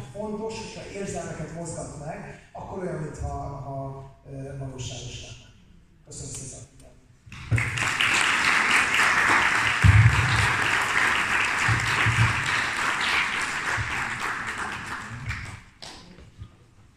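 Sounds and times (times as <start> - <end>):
audience applauding: 7.3 - 16.1.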